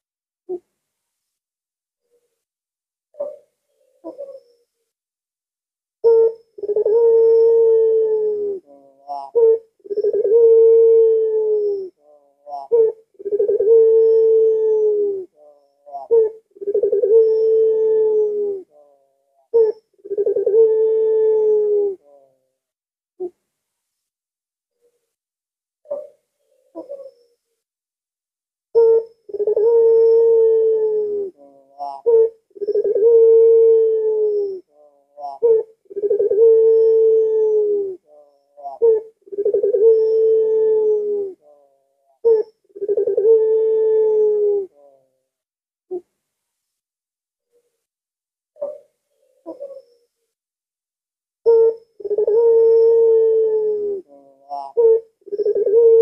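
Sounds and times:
dove cooing: 0:03.2 - 0:04.6, 0:06.0 - 0:22.5, 0:25.9 - 0:27.2, 0:28.8 - 0:45.2, 0:48.6 - 0:50.0, 0:51.4 - 0:56.0.

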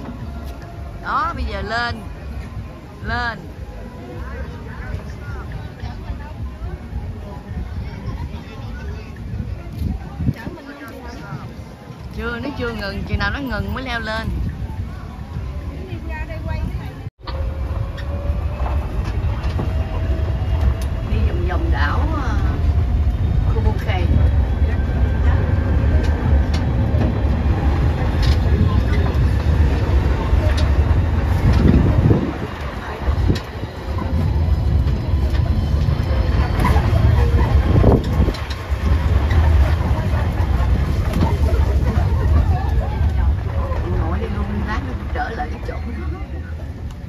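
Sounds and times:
low rumble of moving vehicle: 0:00.0 - 0:47.0
passengers talking: 0:00.0 - 0:47.0
wind on microphone: 0:04.2 - 0:47.0.

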